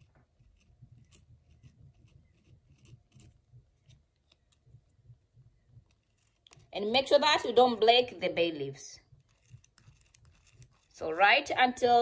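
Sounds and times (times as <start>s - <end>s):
pen tip scratching dried leaf: 0.0s - 4.7s, 5.8s - 6.8s, 9.1s - 11.0s.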